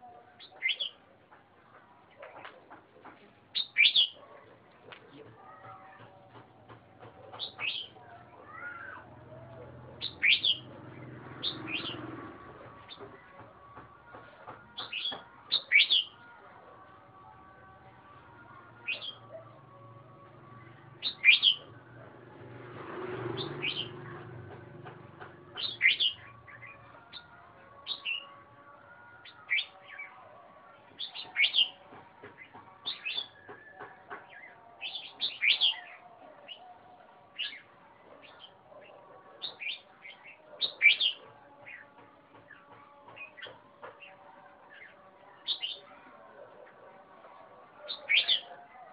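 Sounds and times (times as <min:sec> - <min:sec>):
bulbul singing: 0:00.0 - 0:01.1, 0:03.5 - 0:04.3, 0:05.1 - 0:22.2, 0:23.2 - 0:48.9.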